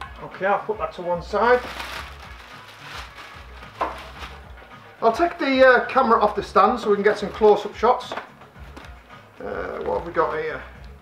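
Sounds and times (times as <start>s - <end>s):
plastic packaging rustling: 1.3s - 5.3s.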